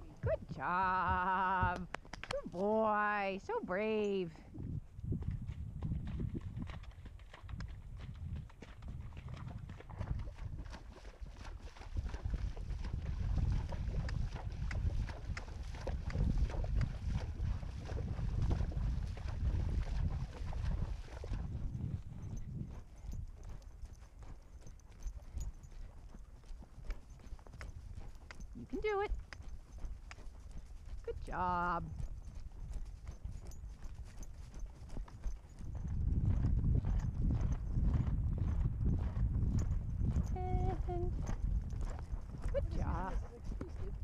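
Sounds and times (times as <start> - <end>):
hoofbeats on dry dirt: 0.0 - 44.0
horse hooves splashing through water: 5.3 - 44.0.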